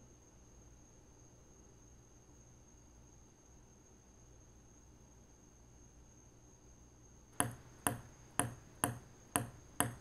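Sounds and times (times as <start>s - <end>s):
ping pong ball bouncing on table: 7.4s - 10.0s.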